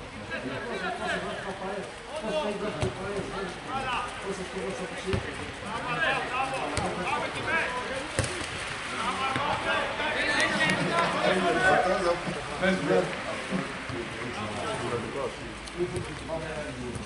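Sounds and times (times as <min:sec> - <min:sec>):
football being kicked: 0:05.1 - 0:05.3, 0:06.6 - 0:07.0, 0:08.1 - 0:08.4.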